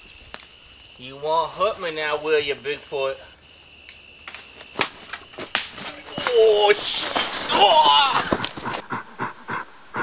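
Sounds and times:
man's voice: 5.9s - 8.4s.

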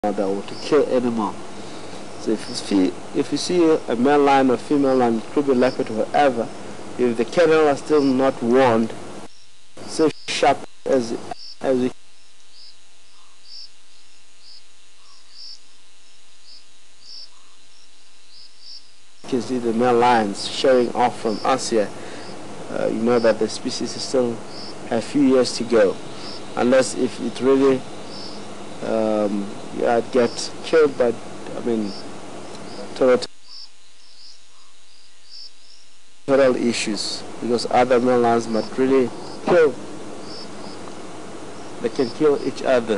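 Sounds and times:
crickets chirping: 0.0s - 42.9s
faint hum: 0.0s - 42.9s
steady hiss: 0.0s - 42.9s.

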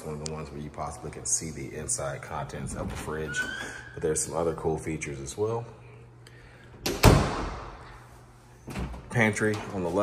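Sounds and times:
door banging shut: 6.8s - 7.7s.

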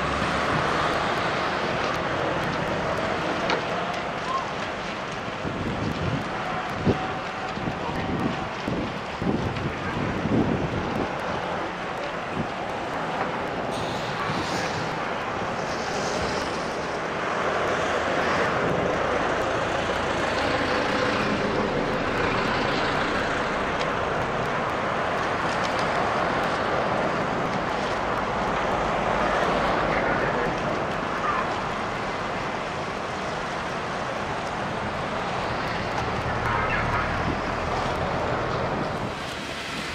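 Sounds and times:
steady outdoor rushing noise: 0.0s - 39.9s.

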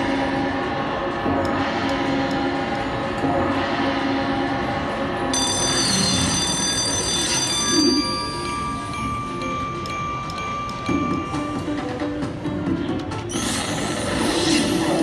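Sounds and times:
high ringing tones: 5.3s - 11.8s
slot machine chimes: 5.3s - 12.2s
slot machine game music: 5.4s - 14.6s.

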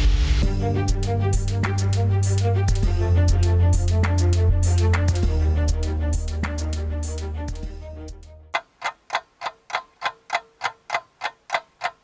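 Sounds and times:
music: 0.0s - 8.6s
clock ticking: 8.5s - 12.0s.

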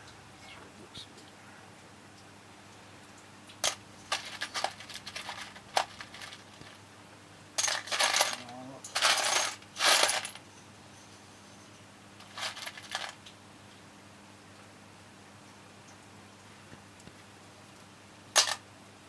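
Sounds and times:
nuts and bolts rattling in metal tin: 3.6s - 6.8s, 7.6s - 10.4s, 12.2s - 13.2s, 18.4s - 18.6s.

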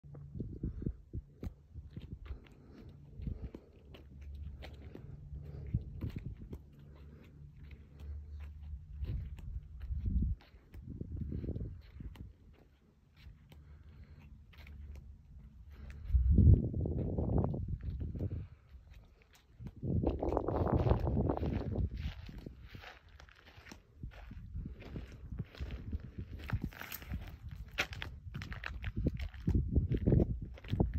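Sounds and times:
footsteps on asphalt: 1.3s - 30.9s.

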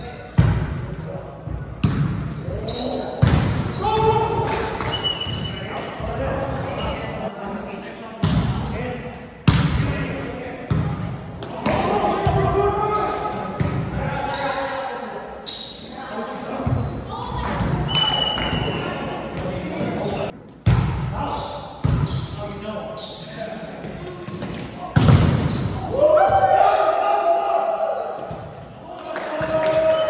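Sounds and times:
players shouting: 25.8s - 28.2s.

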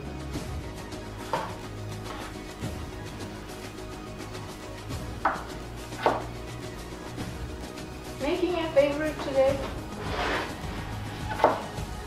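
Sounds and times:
quiet background music: 0.0s - 12.0s
knife chopping on wooden board: 1.3s - 2.3s, 5.2s - 6.3s, 11.2s - 11.8s
louder knife knock: 5.2s - 6.2s.

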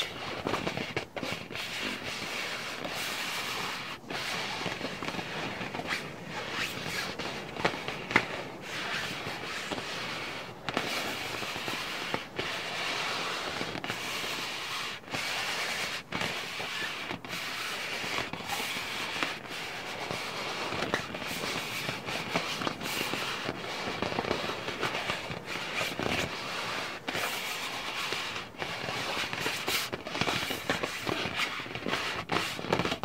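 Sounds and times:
scratching on ball surface: 0.0s - 33.0s.

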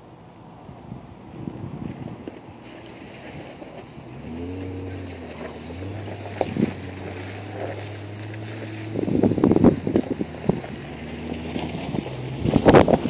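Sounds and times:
car engine running: 0.0s - 13.0s.

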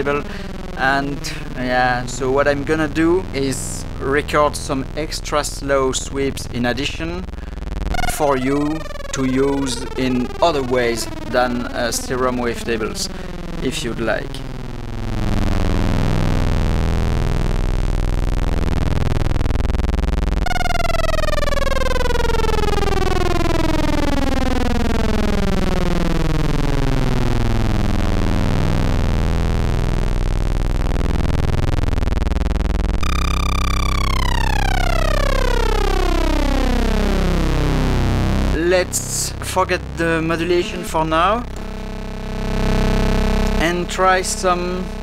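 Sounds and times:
falling synth overtone sweep: 0.0s - 45.0s
low buzzy synthesizer note: 0.0s - 45.0s.

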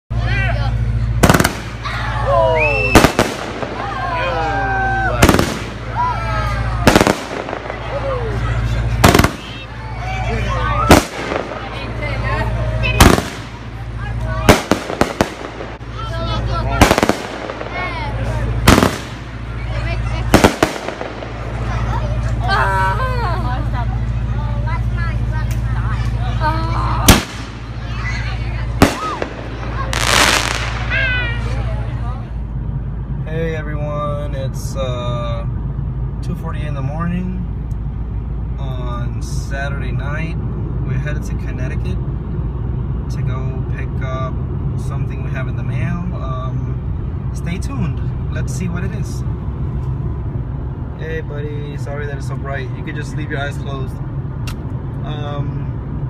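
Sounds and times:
crowd voices calling out: 0.1s - 33.2s
steady low hum: 0.1s - 56.0s
fireworks bangs: 0.8s - 9.9s, 10.5s - 22.5s, 27.0s - 32.0s.

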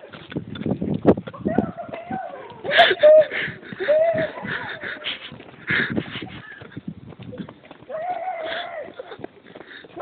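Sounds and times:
heavy wheezing breathing: 2.7s - 6.8s, 8.4s - 10.0s
short yells: 7.9s - 9.0s.

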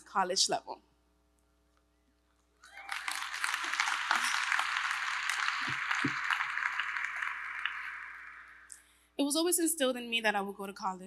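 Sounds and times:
audience clapping: 2.6s - 8.8s.

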